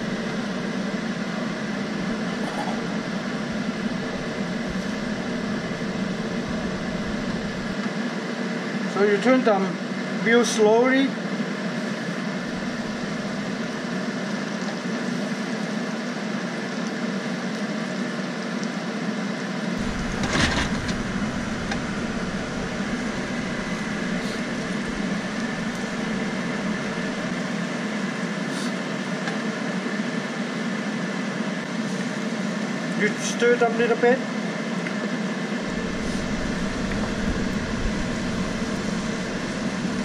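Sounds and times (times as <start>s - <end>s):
constant hum: 0.0s - 7.9s, 11.8s - 15.4s, 19.8s - 29.5s, 35.6s - 40.0s
food frying in a wok: 11.2s - 33.0s.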